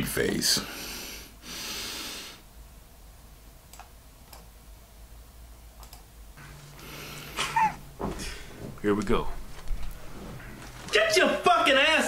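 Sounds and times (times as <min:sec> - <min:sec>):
steady low hum: 0:00.0 - 0:12.0
computer mouse clicks: 0:03.7 - 0:04.5, 0:05.8 - 0:06.1.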